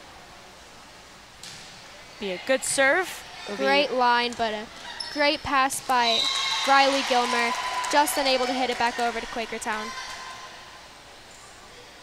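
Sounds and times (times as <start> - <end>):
gymnasium background hiss: 0.0 - 12.0.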